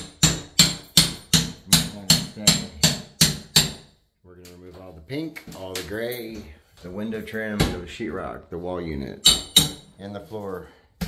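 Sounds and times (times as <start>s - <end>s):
hammer blows on window frame: 0.0s - 3.9s.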